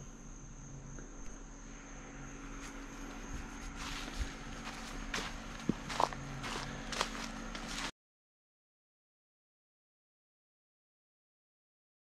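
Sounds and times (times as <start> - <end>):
high insect trill: 0.0 - 7.9
footsteps on dry leaves: 2.6 - 7.9.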